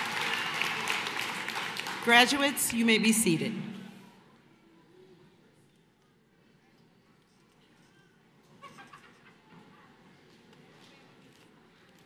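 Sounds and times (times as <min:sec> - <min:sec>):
murmur of large audience: 0:00.0 - 0:12.0.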